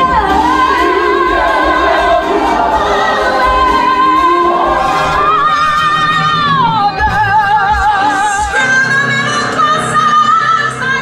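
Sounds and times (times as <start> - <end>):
orchestral accompaniment: 0.0 - 10.2.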